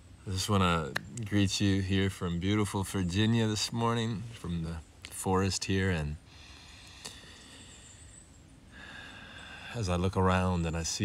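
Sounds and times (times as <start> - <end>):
outdoor ambience hiss: 0.0 - 11.0
person breathing: 6.2 - 9.8.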